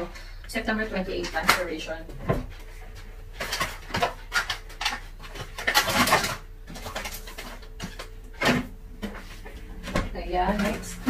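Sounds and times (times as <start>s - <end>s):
packaging rustling: 2.5s - 11.0s.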